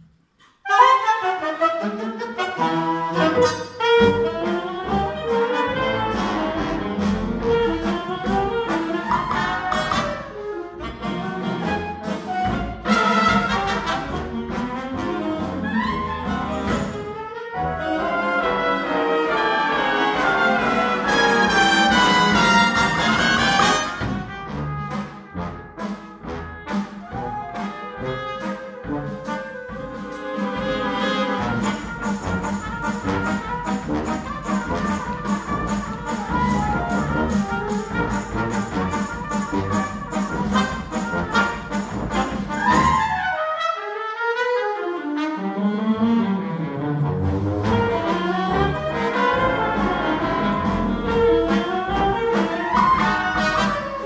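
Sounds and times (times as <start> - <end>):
jazz big band playing: 0.5 - 54.0
trumpets and trombones: 0.6 - 54.0
drum kit and congas: 5.3 - 10.4, 11.0 - 17.2, 20.4 - 43.3, 47.6 - 54.0.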